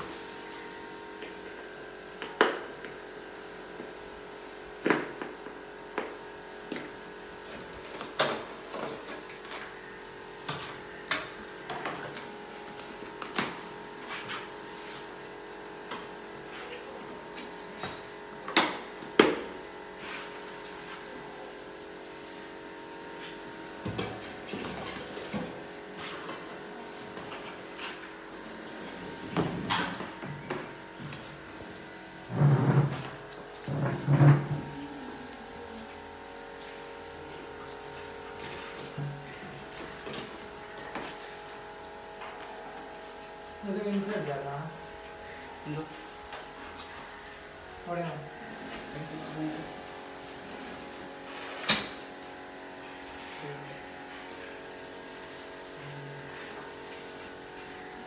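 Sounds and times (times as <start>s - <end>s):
steady background hum: 0.0s - 58.0s.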